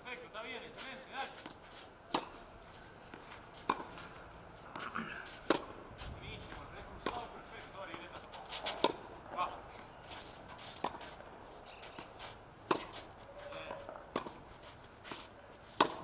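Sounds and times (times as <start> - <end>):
tennis ball hit by racket: 0.9 - 5.8, 6.4 - 16.0
ball bouncing on clay court: 1.3 - 2.4, 3.1 - 4.1, 6.4 - 9.0, 11.7 - 14.4, 15.8 - 16.0.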